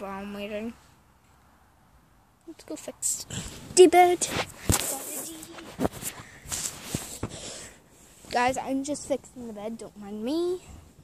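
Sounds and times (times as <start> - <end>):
bedding rustling: 3.3 - 10.8.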